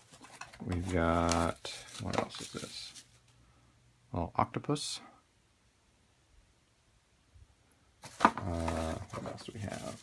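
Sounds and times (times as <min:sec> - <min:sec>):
bubble wrap rustling: 0:00.0 - 0:03.4, 0:08.0 - 0:10.0.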